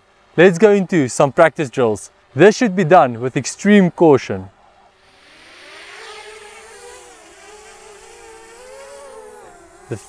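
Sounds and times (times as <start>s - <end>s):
drone propellers buzzing: 4.5s - 10.0s.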